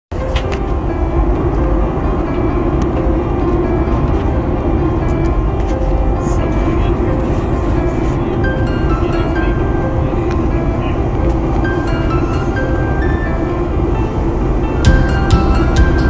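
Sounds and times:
airliner cabin engine roar: 0.1 - 16.0
faint music: 0.1 - 16.0.

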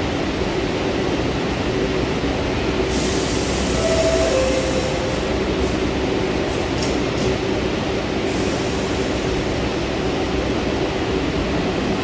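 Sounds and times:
subway train rumbling in tunnel: 0.0 - 12.0
short high tone stepping down: 3.8 - 5.5.

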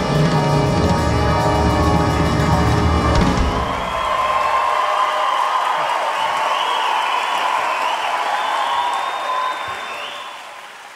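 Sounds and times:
audience applauding: 2.2 - 10.9
audience cheering: 2.8 - 10.9.

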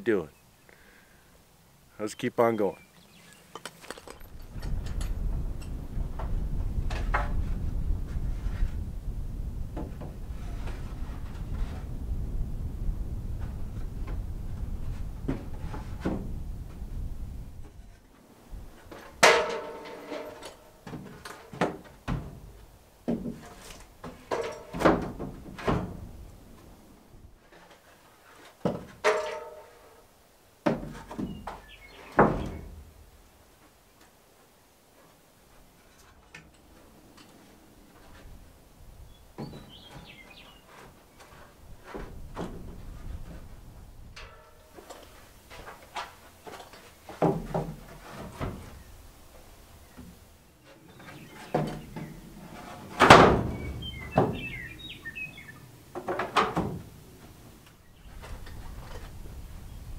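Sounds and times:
steady low rumble: 4.2 - 18.0.

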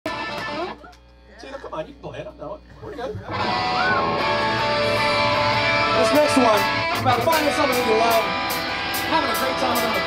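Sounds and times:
loud electric guitar: 0.1 - 1.1, 3.1 - 10.0.

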